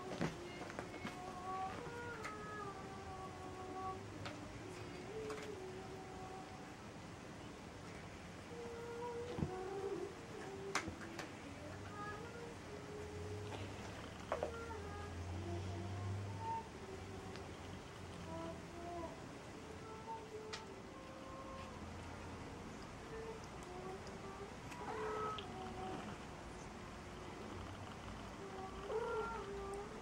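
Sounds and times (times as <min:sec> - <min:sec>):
cat meowing: 0:24.7 - 0:26.0, 0:28.8 - 0:29.8.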